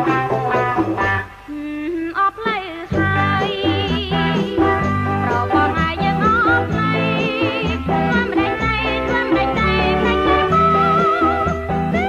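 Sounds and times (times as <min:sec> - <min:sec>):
pop band playing: 0:00.0 - 0:01.4, 0:02.6 - 0:12.0
woman singing: 0:01.5 - 0:12.0.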